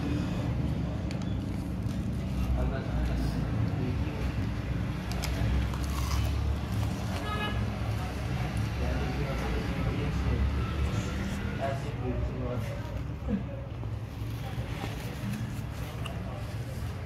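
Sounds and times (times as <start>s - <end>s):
crunchy chewing: 3.5s - 7.8s.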